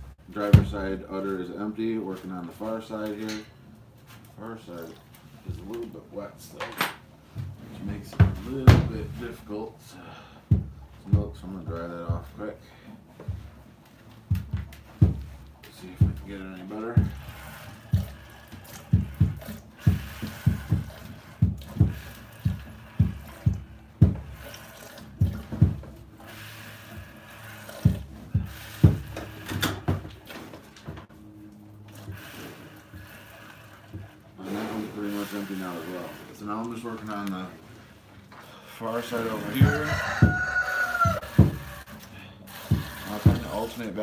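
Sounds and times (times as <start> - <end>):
milk squirting into pail: 14.3 - 30.4, 31.5 - 37.4, 40.7 - 44.0.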